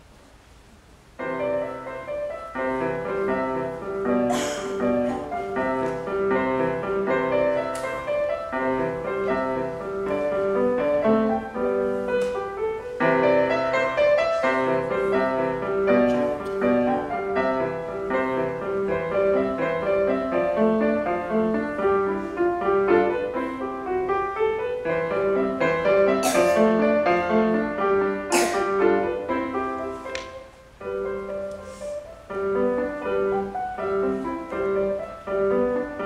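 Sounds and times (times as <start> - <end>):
solo grand piano piece: 0.0 - 36.0.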